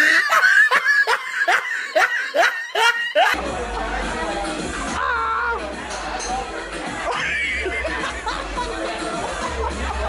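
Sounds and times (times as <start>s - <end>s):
person laughing hard: 0.0s - 3.4s
music: 2.8s - 10.0s.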